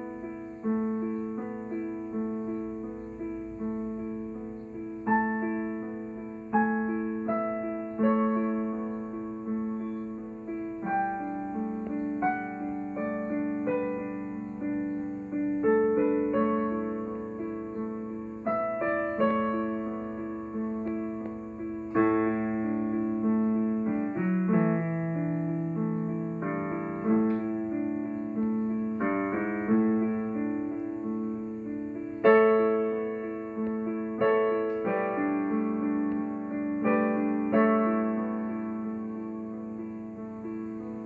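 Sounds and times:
digital piano piece: 0.0s - 41.0s.

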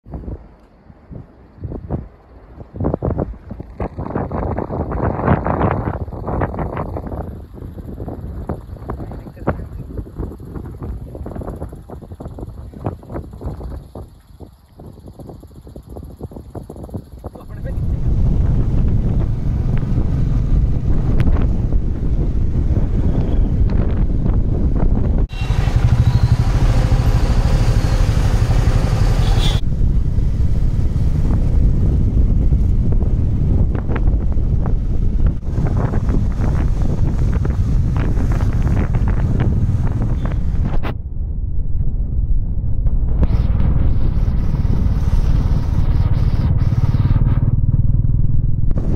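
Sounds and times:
road and wind noise: 0.0s - 48.9s
motorcycle engine running: 3.7s - 40.8s, 42.9s - 48.9s.

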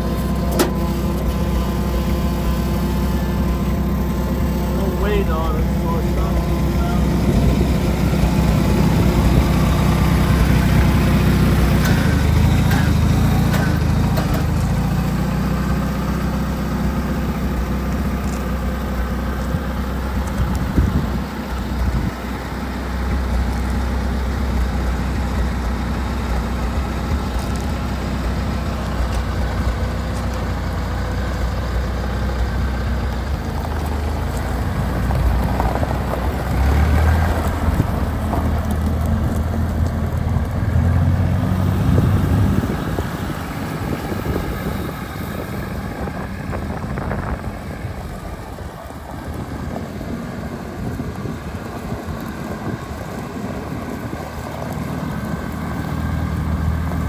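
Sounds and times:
tractor engine running: 0.0s - 57.0s.

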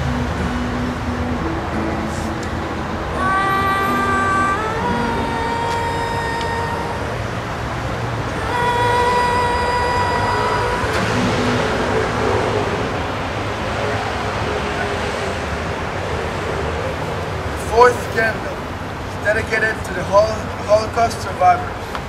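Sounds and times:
acoustic guitar: 0.0s - 22.0s
road traffic hum: 0.0s - 22.0s
woman singing: 3.1s - 7.4s, 8.3s - 12.1s.

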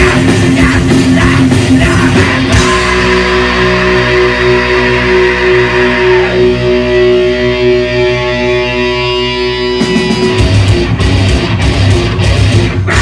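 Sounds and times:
distorted electric guitar chord: 0.0s - 13.0s
heavy metal band playing: 0.0s - 13.0s.

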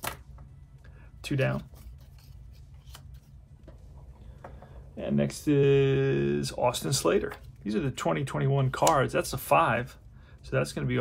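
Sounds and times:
paper cards rustling and clicking: 1.5s - 3.9s.

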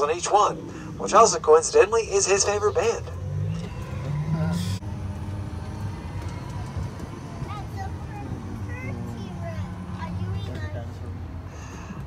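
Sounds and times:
tram engine running: 0.0s - 12.0s.

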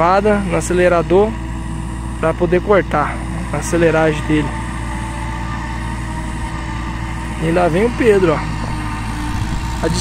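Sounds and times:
tractor engine at high revs: 0.0s - 10.0s.

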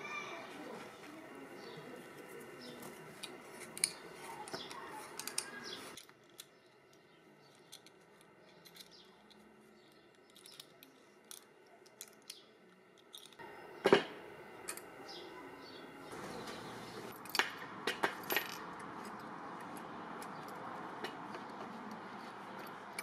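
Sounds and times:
small metallic clicks and taps: 3.2s - 14.0s, 17.1s - 23.0s.

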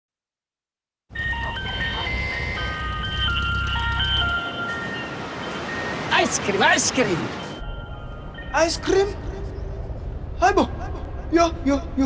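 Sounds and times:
ice cream van chime melody: 1.1s - 10.2s.

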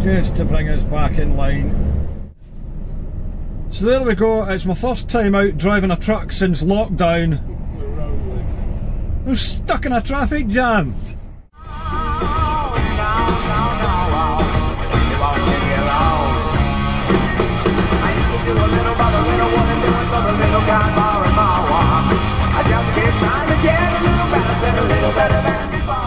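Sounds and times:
rock song on radio: 11.6s - 26.0s.

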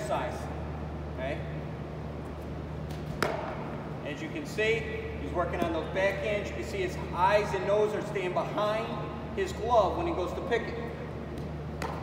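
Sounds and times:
low steady hum: 0.0s - 12.0s
baseball smacking into glove: 2.9s - 3.7s.

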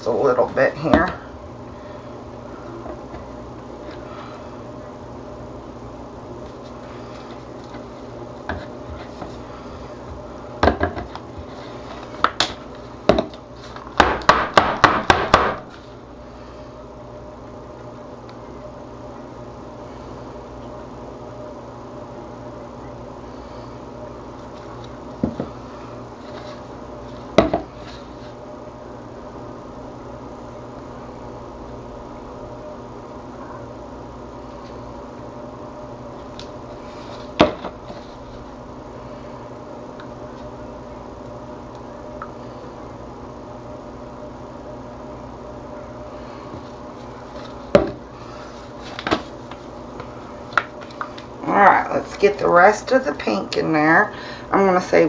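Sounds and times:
steady background hum: 0.0s - 55.0s
utensil knocking on plastic jugs: 13.1s - 13.4s, 27.4s - 27.7s.

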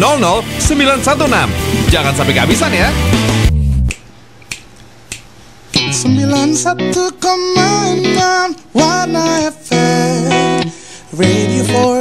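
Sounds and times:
radio jingle with guitar and singing: 0.0s - 3.9s, 5.7s - 12.0s
finger snaps: 3.8s - 5.9s.

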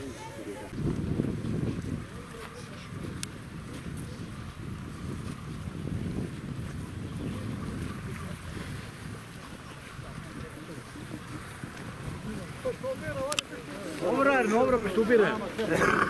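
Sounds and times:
faint crowd voices: 0.0s - 16.0s
wind buffeting microphone: 0.0s - 16.0s.

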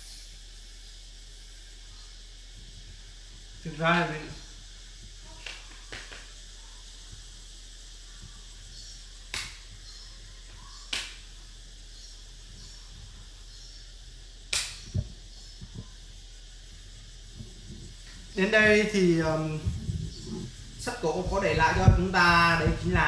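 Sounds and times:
wooden game pieces clicking on board: 5.3s - 6.4s.

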